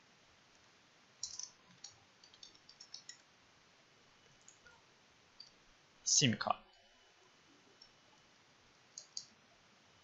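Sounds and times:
computer keyboard keystrokes: 0:01.2 - 0:03.2, 0:09.0 - 0:09.3.

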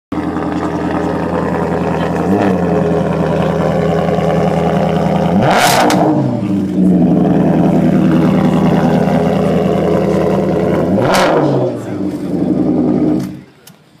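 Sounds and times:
car engine revving: 0:00.1 - 0:13.6.

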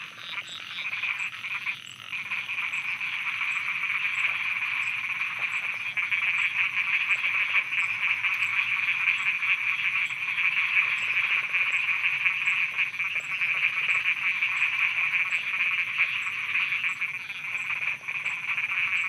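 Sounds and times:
frogs croaking: 0:00.0 - 0:19.0.

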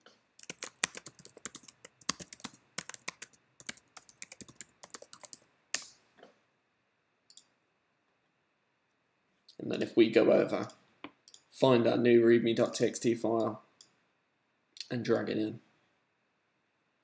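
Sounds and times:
keyboard and mouse clicking: 0:00.4 - 0:06.0, 0:07.3 - 0:07.5, 0:10.6 - 0:11.5.

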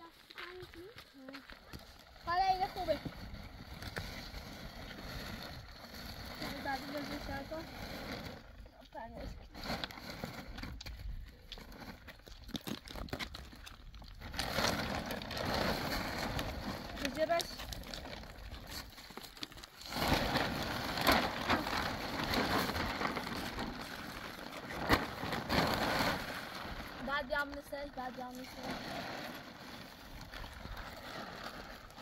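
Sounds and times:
plastic sheet rustling and crinkling: 0:00.0 - 0:32.0.

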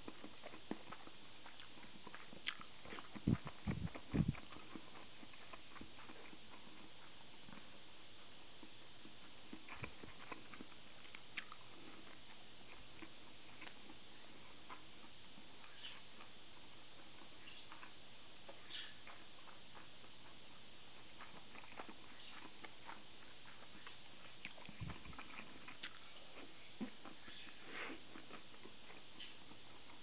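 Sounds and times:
chewing soft food: 0:00.0 - 0:30.0
steady background hiss: 0:00.0 - 0:30.0
soft dull mouth thumps: 0:03.0 - 0:04.5.

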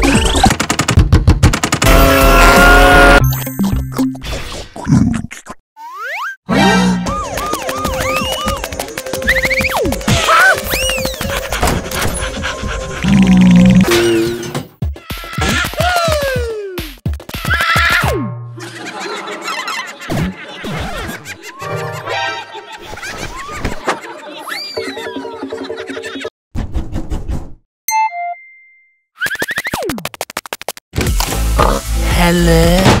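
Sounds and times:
cartoon character panting: 0:11.2 - 0:13.7.

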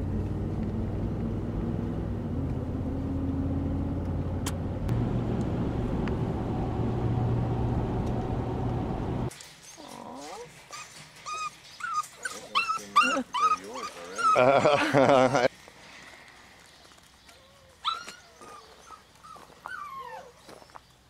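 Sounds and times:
car engine and road noise: 0:00.0 - 0:09.3
puppies whining and yipping: 0:09.8 - 0:14.8, 0:17.4 - 0:20.5.

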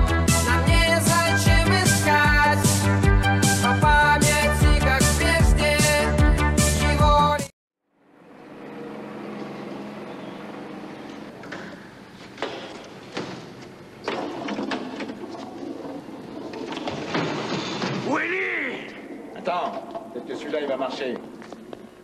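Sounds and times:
steady machine hum: 0:08.0 - 0:13.2, 0:18.4 - 0:22.0.

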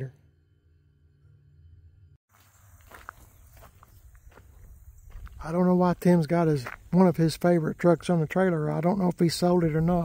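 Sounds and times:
footsteps on gravel: 0:02.3 - 0:10.0.

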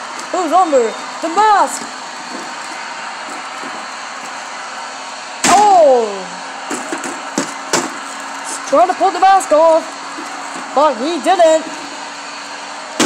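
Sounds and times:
steady background hum: 0:00.0 - 0:13.0.

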